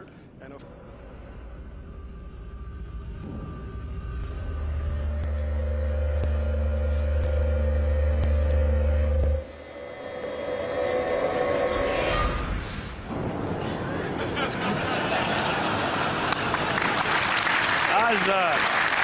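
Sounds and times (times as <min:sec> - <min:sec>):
deep rumble with held tone: 0:00.0 - 0:16.4
bright swell of sound: 0:09.2 - 0:13.3.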